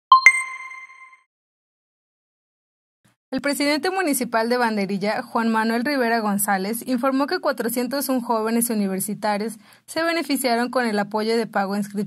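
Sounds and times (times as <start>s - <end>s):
two-tone chime: 0.1s - 1.2s.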